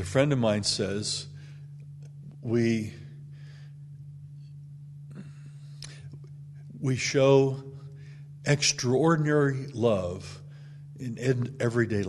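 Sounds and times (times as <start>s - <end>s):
man speaking: 0.0s - 1.4s, 2.4s - 3.1s, 6.8s - 7.8s, 8.5s - 10.4s, 11.0s - 12.0s
low hum: 0.0s - 12.0s
mouth click: 5.8s - 6.4s.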